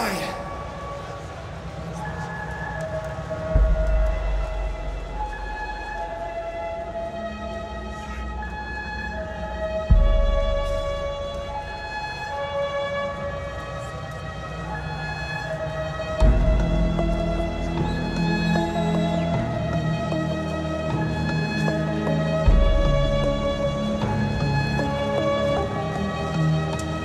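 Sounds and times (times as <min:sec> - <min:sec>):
slow synth melody: 0:03.2 - 0:27.0.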